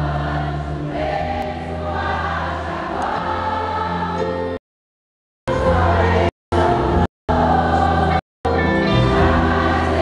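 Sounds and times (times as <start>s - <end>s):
choir singing worship song: 0.0s - 4.6s, 5.5s - 10.0s.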